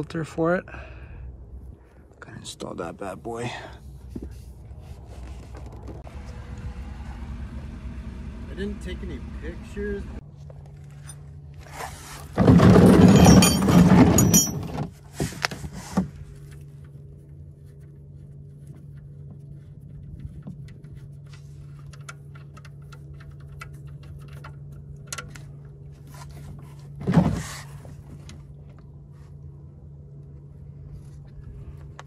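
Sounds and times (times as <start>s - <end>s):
steady low hum: 14.3s - 32.0s.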